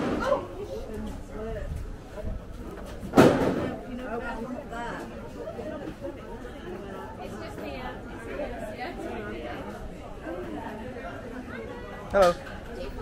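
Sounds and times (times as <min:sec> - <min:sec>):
indistinct chatter of people: 0:00.0 - 0:13.0.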